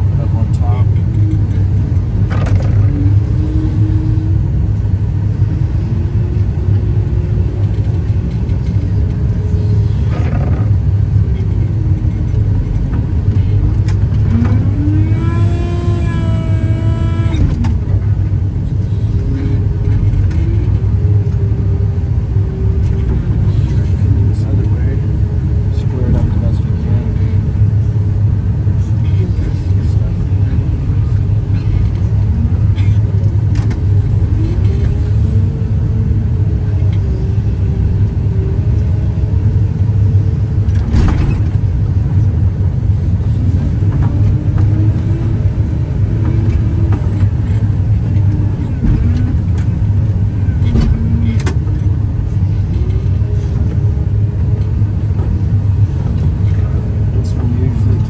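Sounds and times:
snowblower engine droning: 0:00.0 - 0:58.0.

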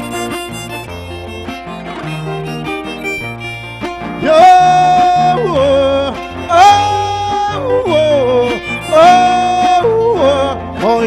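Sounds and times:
guitar: 0:00.0 - 0:11.0
violin: 0:00.0 - 0:11.0
man singing wailing notes: 0:04.2 - 0:11.0.

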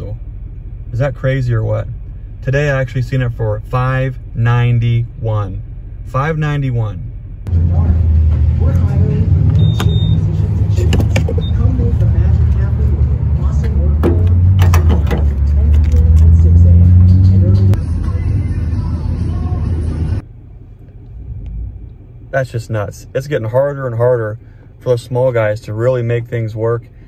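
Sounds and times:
vehicle engine idling: 0:00.0 - 0:27.0
short high beep: 0:09.6 - 0:10.5, 0:11.4 - 0:11.8.

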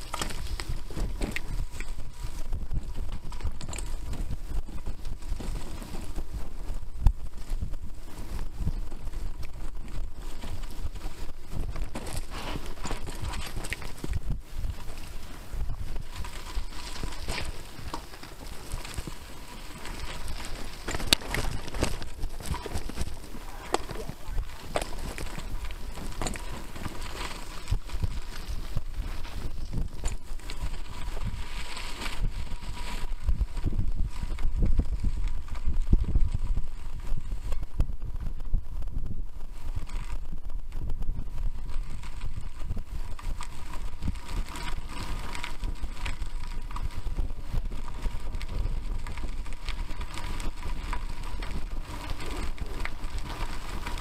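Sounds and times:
bike knocks and rattles: 0:00.0 - 0:38.3
bike tyres rumbling on dirt: 0:00.0 - 0:54.0.

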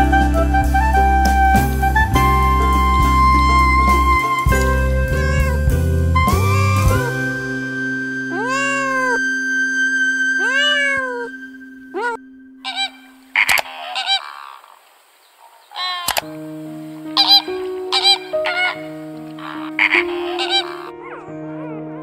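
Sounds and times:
flamingos honking: 0:00.0 - 0:22.0
cat meowing: 0:03.4 - 0:07.3, 0:08.3 - 0:09.4, 0:10.4 - 0:14.4, 0:15.8 - 0:16.2, 0:17.1 - 0:22.0.

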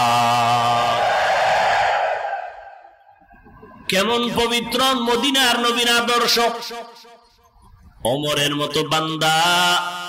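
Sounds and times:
man chanting over loudspeaker: 0:00.0 - 0:01.1, 0:03.9 - 0:07.2, 0:08.0 - 0:10.0.

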